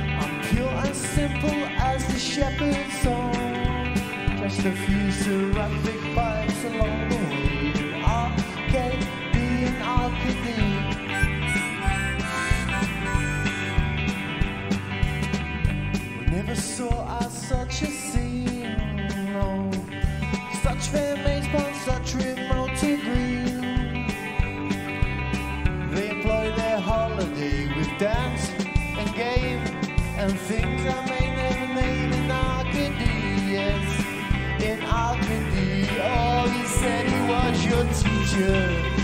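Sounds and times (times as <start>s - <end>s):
blues-rock band playing: 0.0s - 39.0s
harmonica bending notes: 7.1s - 15.4s, 35.6s - 39.0s.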